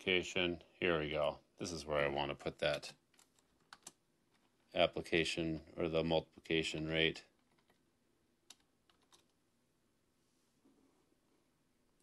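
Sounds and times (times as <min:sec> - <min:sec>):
faint keyboard keystrokes: 0:02.6 - 0:04.5, 0:07.4 - 0:07.8, 0:08.5 - 0:09.4.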